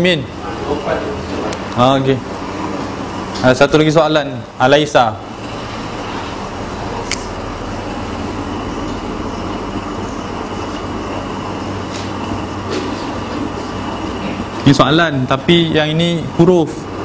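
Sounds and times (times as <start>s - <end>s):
air conditioning hum and hiss: 0.0s - 17.0s
low electrical hum: 0.0s - 17.0s.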